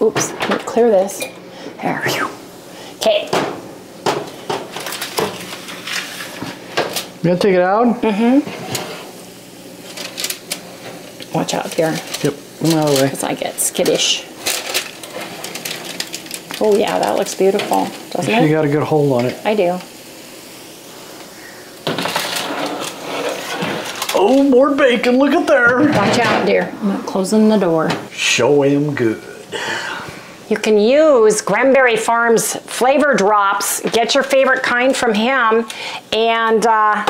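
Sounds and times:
metal pans and oven rack clattering: 21.8 - 24.5, 25.1 - 26.7.

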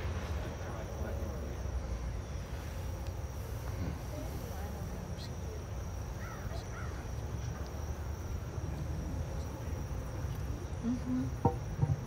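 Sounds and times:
insects trilling: 0.0 - 12.0
low outdoor rumble: 0.0 - 12.0.

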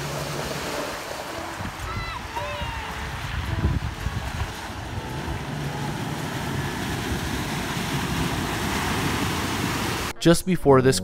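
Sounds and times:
water sloshing against wheels: 0.0 - 10.1
wind on microphone: 1.4 - 10.1
low engine rumble: 2.6 - 10.1.

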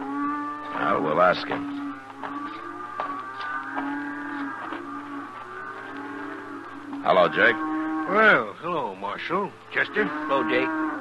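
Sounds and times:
cattle lowing: 0.0 - 11.0.

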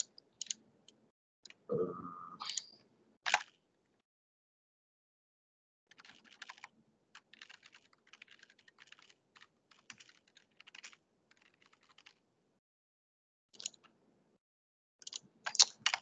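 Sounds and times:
keyboard typing: 0.0 - 1.7, 2.4 - 3.6, 5.9 - 12.2, 13.6 - 13.9, 15.0 - 16.0.

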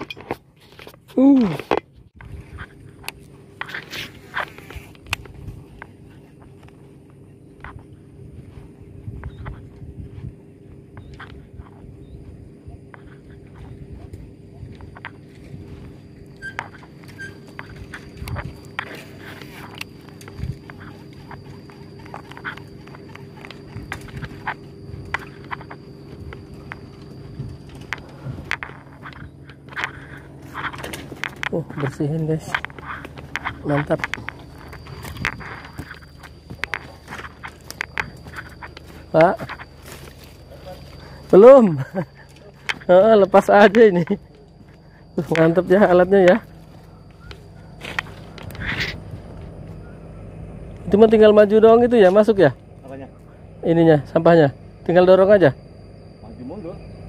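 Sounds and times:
boat engine hum: 0.0 - 57.0
faint high whine: 0.0 - 57.0
footsteps on muddy bank: 2.2 - 41.3.

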